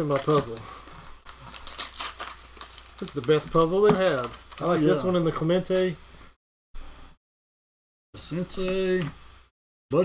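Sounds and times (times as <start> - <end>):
wax paper wrapper crinkling: 0.0 - 5.3.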